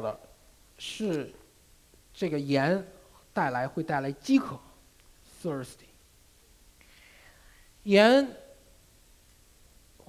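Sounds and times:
man speaking: 0:00.0 - 0:01.4, 0:02.2 - 0:06.0, 0:07.8 - 0:08.5
soft breath: 0:06.8 - 0:07.8.

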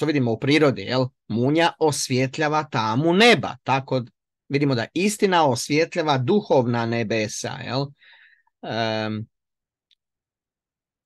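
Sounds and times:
man speaking: 0:00.0 - 0:08.0, 0:08.6 - 0:09.4.

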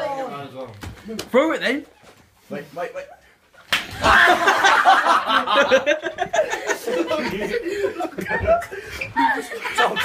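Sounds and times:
people laughing: 0:03.0 - 0:10.0.

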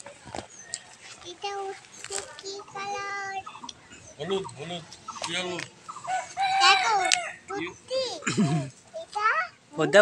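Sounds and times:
child calling in sung tone: 0:01.3 - 0:03.5.

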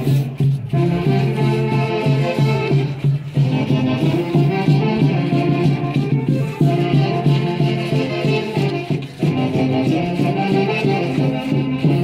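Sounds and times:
band playing lively dance melody: 0:00.0 - 0:12.0.

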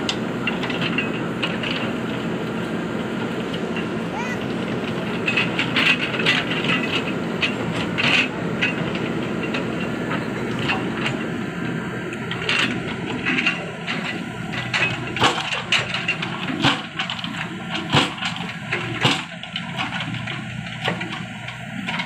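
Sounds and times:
diesel engine running under load: 0:00.0 - 0:22.0.

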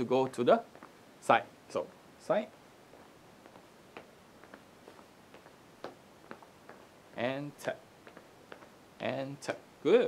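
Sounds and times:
sneakers tapping on floor: 0:02.9 - 0:08.8.

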